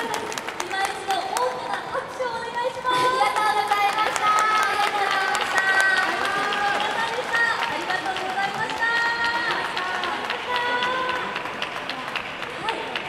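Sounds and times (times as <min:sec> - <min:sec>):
audience hand claps: 0:00.0 - 0:01.9, 0:03.1 - 0:13.0.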